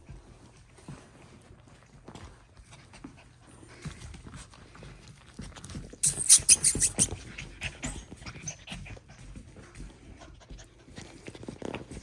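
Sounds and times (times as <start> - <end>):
paws scuffling against clothing: 0.0 - 12.0
puppies panting and licking: 0.0 - 12.0.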